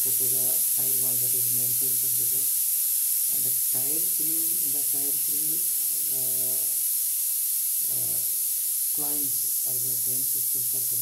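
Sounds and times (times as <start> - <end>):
recording hiss: 0.0 - 11.0
man saying uh: 3.3 - 6.7, 7.8 - 8.3, 9.0 - 11.0.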